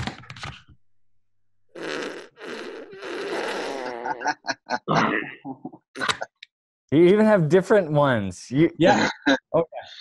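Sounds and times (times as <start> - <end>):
fart sound effects: 1.7 - 4.4.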